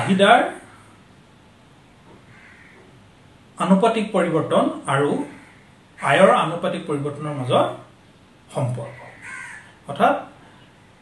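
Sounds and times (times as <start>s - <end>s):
man speaking: 0.0s - 0.7s, 3.6s - 5.4s, 6.0s - 7.9s, 8.5s - 9.2s, 9.9s - 10.4s
crow-like caw: 2.2s - 3.0s, 5.2s - 6.3s, 8.9s - 9.8s.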